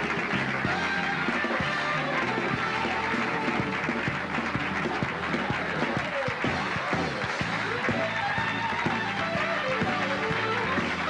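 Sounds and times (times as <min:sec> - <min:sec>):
bass guitar: 0:00.0 - 0:11.0
drum kit beat: 0:00.0 - 0:11.0
keyboards: 0:00.0 - 0:11.0.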